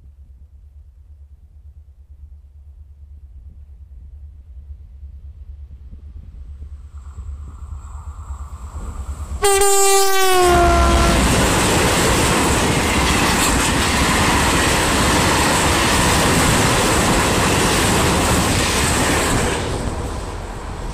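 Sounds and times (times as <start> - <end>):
freight train wagons rumbling: 8.7 - 20.9
locomotive horn: 9.4 - 11.9.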